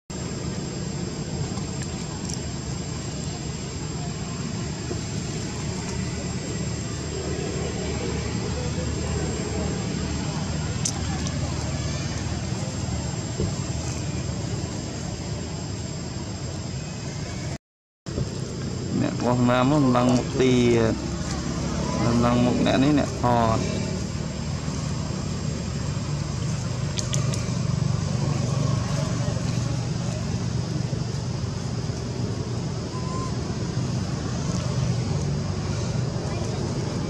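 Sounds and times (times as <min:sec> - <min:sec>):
low outdoor rumble: 0:00.1 - 0:37.0.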